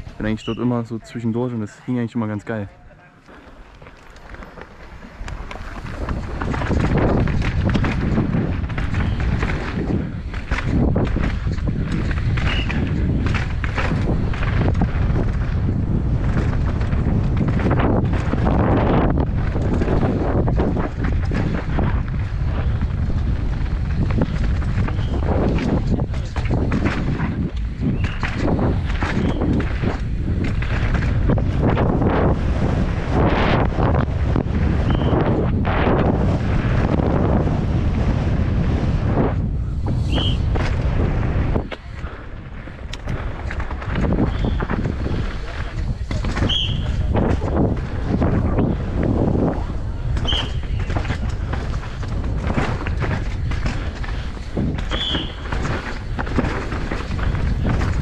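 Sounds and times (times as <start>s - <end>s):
wind buffeting microphone: 0.0s - 2.8s, 3.4s - 58.0s
bike rattling on rough ground: 3.2s - 58.0s.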